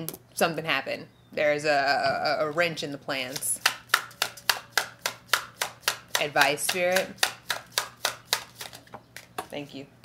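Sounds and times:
cards being shuffled: 0:03.2 - 0:09.4.

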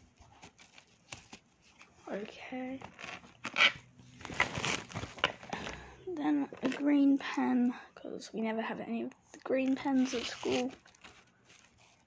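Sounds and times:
fabric pencil case rustling: 0:00.0 - 0:07.0, 0:09.6 - 0:12.0.

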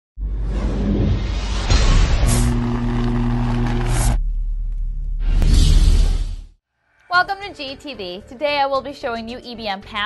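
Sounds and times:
whoosh: 0:00.2 - 0:04.2
steady low drone: 0:00.2 - 0:05.6.

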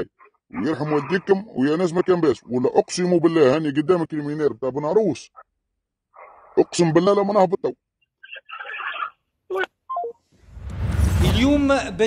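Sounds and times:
rising whoosh: 0:10.4 - 0:12.0.

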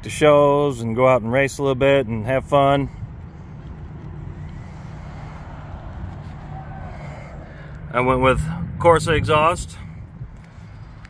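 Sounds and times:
car engine idling: 0:01.8 - 0:11.0.

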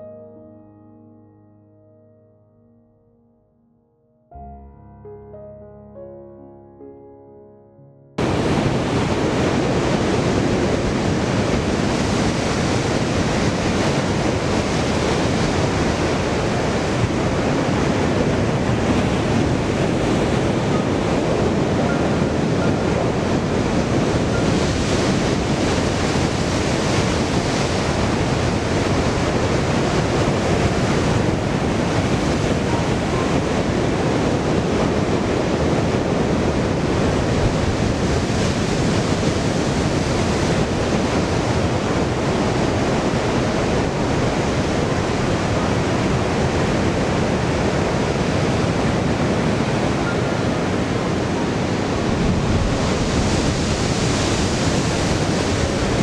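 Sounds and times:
surf breaking over rocks: 0:51.8 - 0:56.0.

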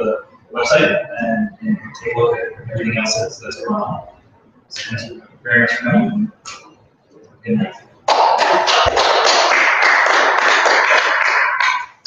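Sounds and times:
audience applauding: 0:08.1 - 0:12.0.

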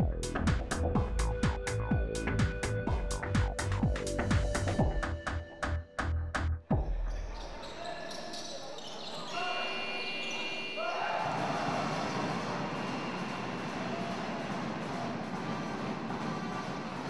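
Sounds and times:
voices calling out in gym: 0:06.8 - 0:17.0.

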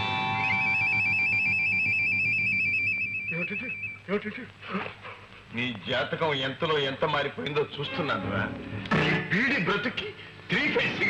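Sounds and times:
electronic warbling ringtone: 0:00.0 - 0:04.0
man speaking: 0:05.5 - 0:08.6.

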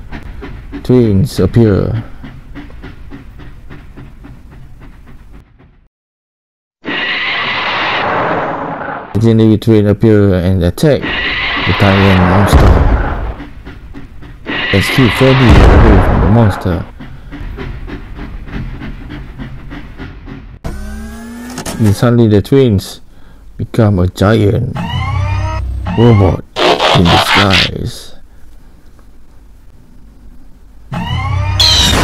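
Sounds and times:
steam train chugging: 0:00.0 - 0:05.8, 0:11.0 - 0:21.1
loud hiss with whistling tone: 0:06.9 - 0:08.0, 0:11.0 - 0:12.1, 0:14.5 - 0:15.5.

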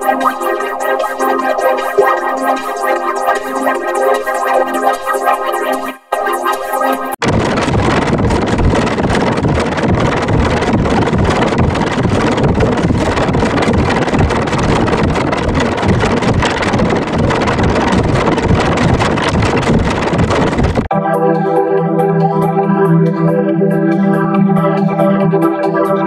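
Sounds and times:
harsh distorted noise: 0:00.0 - 0:20.9.

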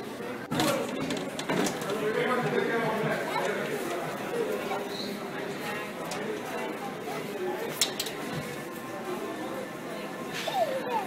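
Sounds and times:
indistinct voices chattering: 0:00.0 - 0:11.0.

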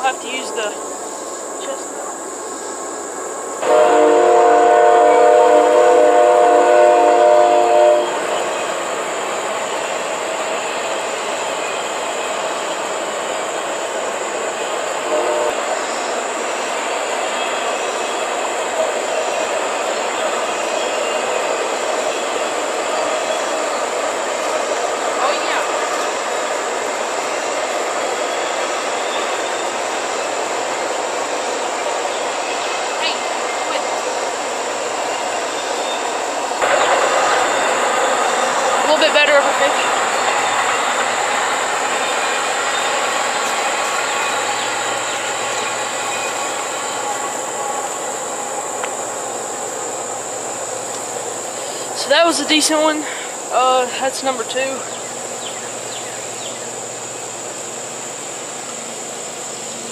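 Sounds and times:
train rumbling past: 0:00.0 - 0:59.9
train horn chord: 0:03.6 - 0:08.5, 0:15.1 - 0:15.6.

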